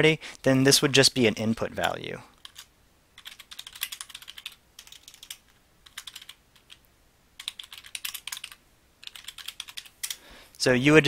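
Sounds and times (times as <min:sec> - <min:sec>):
typing on computer keyboard: 0:01.8 - 0:06.8, 0:07.4 - 0:10.2.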